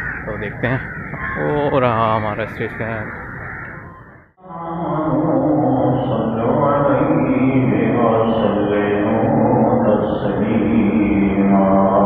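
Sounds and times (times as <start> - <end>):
man chanting religious recitation: 4.4 - 12.0.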